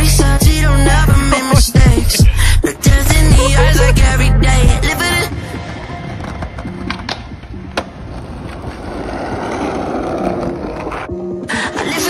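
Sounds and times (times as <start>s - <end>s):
hip hop music: 0.0s - 7.7s, 11.6s - 12.0s
skateboard wheels rolling on paving: 4.9s - 12.0s
skateboard clacks: 5.7s - 11.1s.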